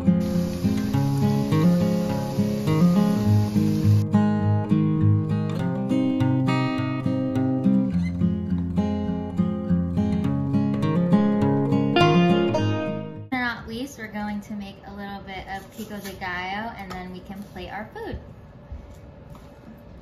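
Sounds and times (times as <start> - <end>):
dough frying in hot oil: 0.0 - 4.0
instrumental background music: 0.0 - 13.3.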